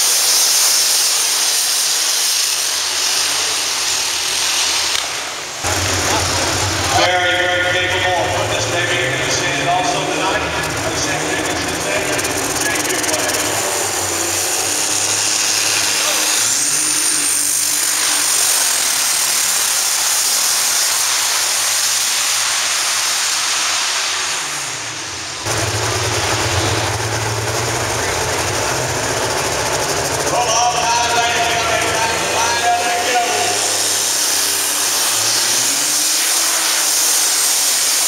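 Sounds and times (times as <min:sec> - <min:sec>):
diesel tractor engine at full throttle: 0:00.0 - 0:38.0.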